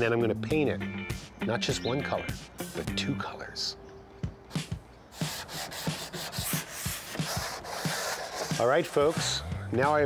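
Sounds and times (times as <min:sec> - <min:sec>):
sandpaper rasping on wood: 0:05.1 - 0:09.4.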